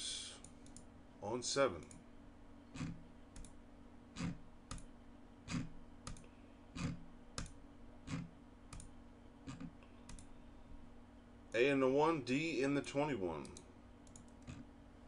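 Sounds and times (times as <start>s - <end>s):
faint steady hum: 0.0s - 15.0s
computer mouse clicking: 0.4s - 0.9s, 2.8s - 3.6s, 5.5s - 8.9s, 9.5s - 10.3s, 13.4s - 14.6s.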